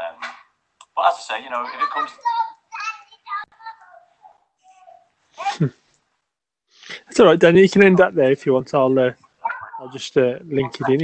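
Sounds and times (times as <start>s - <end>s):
man talking over garbled connection: 0.9s - 2.2s, 7.0s - 9.2s, 9.8s - 11.0s.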